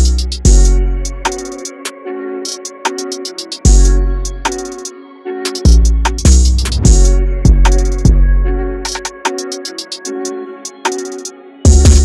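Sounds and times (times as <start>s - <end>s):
hi-hat and snare hits: 0.0s - 4.9s, 5.5s - 8.2s, 8.8s - 12.0s
synth melody: 0.0s - 12.0s.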